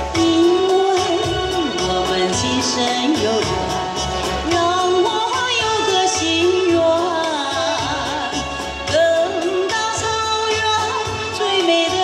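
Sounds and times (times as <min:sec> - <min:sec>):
woman singing a ballad: 0:00.0 - 0:12.0.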